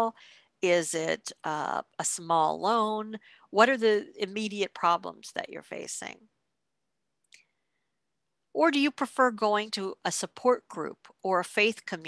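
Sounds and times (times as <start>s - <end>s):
woman speaking: 0.0s - 6.3s, 8.6s - 12.0s.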